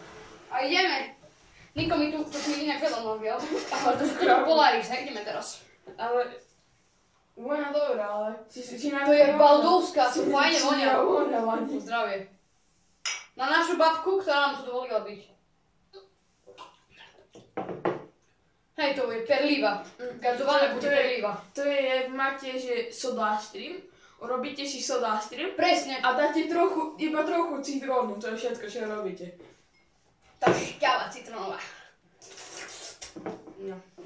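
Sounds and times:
boy talking: 0.5 - 1.2, 1.8 - 6.5, 7.4 - 12.3, 13.3 - 15.3, 18.8 - 29.4, 30.4 - 31.9
glass knocking on table: 17.4 - 18.1
short hiss: 32.2 - 33.2
sipping and swallowing: 32.2 - 33.2.

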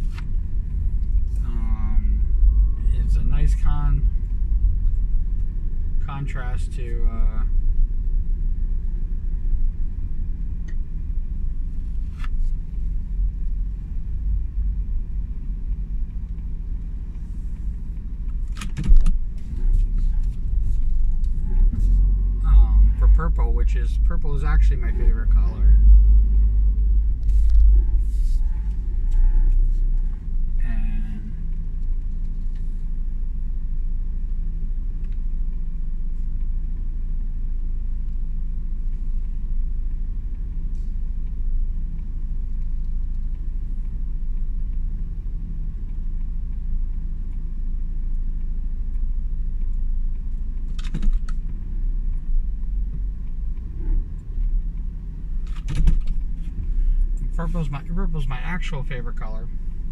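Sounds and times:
car cabin rumble: 0.0 - 59.9.

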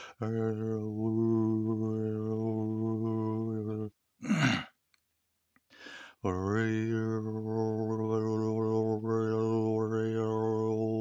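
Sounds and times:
faint breath in: 0.0 - 0.2, 5.7 - 6.2
man sighing loudly: 4.2 - 4.7.

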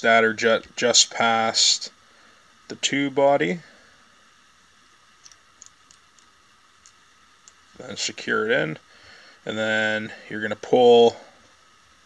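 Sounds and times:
low room hiss: 0.0 - 12.0
small ticks of thread handling: 5.2 - 7.7.

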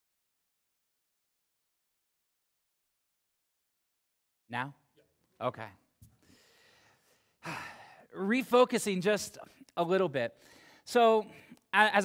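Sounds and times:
man sighing: 7.4 - 8.1.

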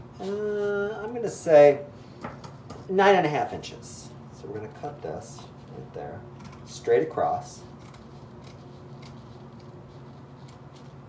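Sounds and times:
low steady hum: 0.0 - 11.0
scissors snipping: 7.8 - 9.7.

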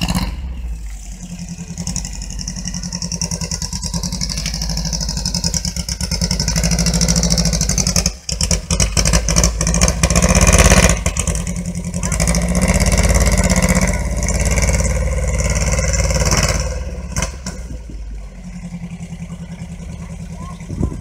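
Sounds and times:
car engine running: 0.0 - 21.0.

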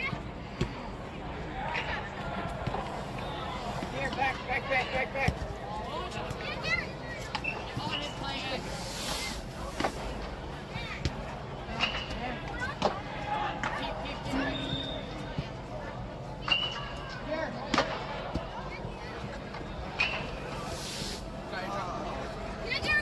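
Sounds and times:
background hubbub: 0.0 - 23.0
people calling out: 13.3 - 15.4.

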